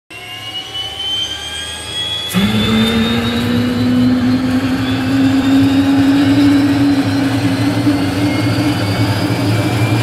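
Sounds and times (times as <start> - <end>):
jet engines whining: 0.1 - 10.0
low rumble: 2.3 - 10.0.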